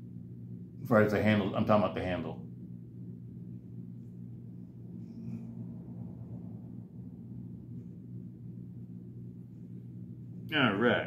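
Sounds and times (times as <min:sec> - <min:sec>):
steady low hum: 0:00.0 - 0:11.0
faint soft sound: 0:03.2 - 0:10.4.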